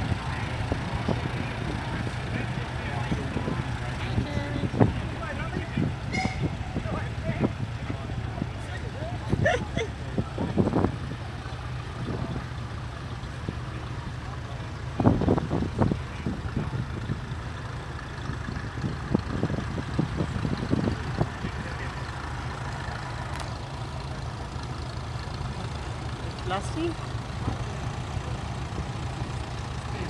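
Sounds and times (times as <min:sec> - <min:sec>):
tractor engines running: 0:00.0 - 0:30.0
nearby voices: 0:06.8 - 0:10.7.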